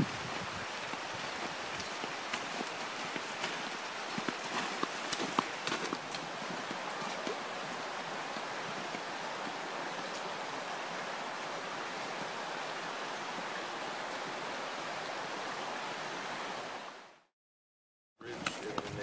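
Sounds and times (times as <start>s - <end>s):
flowing river water: 0.0s - 17.3s.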